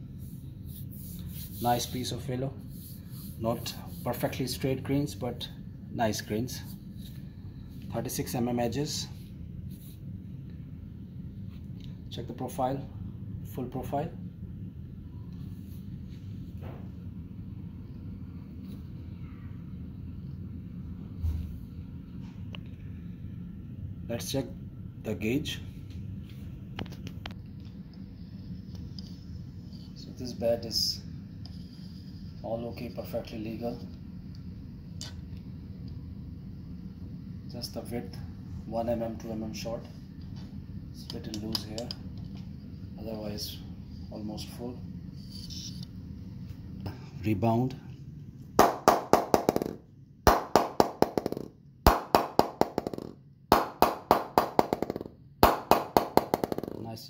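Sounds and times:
ball bouncing on cricket bat: 48.6 - 56.8.

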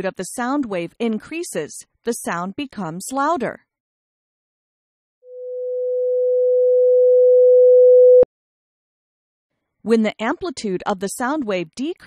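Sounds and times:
sine tone: 5.3 - 8.3.

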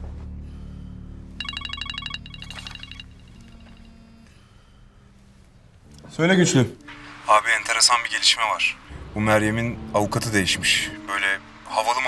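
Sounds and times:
mobile phone ringing trill: 1.4 - 4.1.

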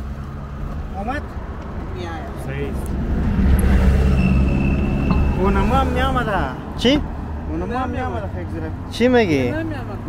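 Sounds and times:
low vehicle engine rumble: 0.0 - 10.0.

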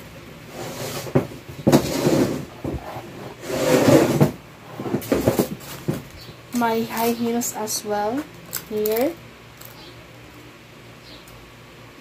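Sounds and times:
rustling with small knocks: 0.7 - 7.4.

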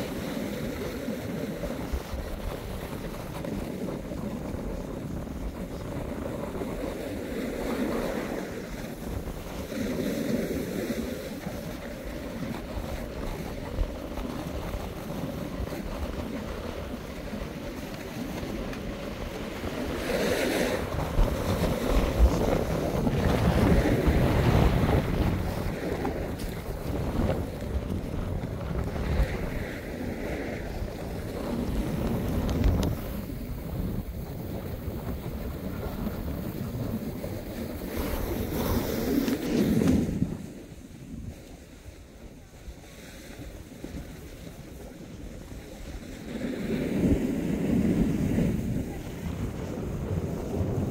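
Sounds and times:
sliding on packed snow: 0.0 - 50.9
wind buffeting microphone: 0.0 - 50.9.

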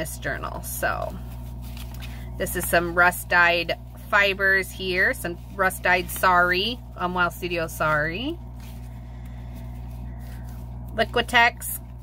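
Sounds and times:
low electrical hum: 0.0 - 12.0
fabric and paper handling: 0.4 - 12.0.

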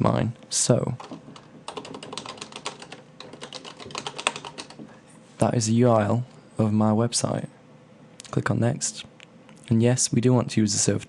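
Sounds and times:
keyboard typing clicks: 1.0 - 4.9.

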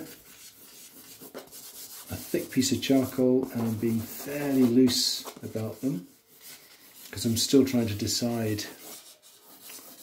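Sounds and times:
charcoal scratching on paper: 0.0 - 10.0.

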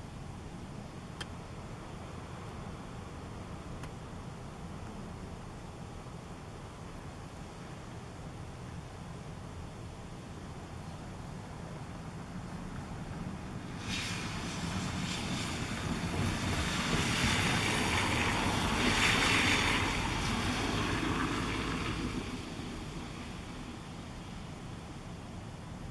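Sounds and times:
passing vehicle rushing: 13.5 - 24.3.

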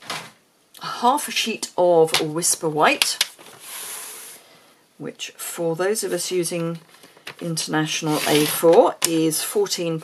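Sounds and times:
paper sliding hiss: 3.4 - 4.4, 8.1 - 8.7.

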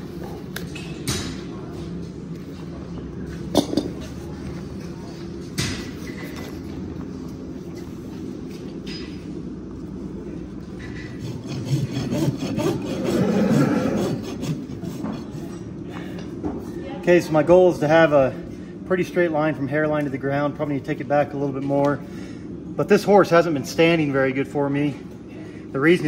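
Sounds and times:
hoof knife and rasp scraping: 10.8 - 15.7.

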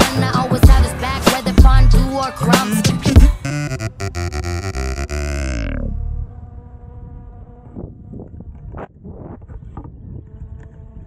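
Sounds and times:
background music: 0.0 - 7.6
wind: 0.0 - 11.0.

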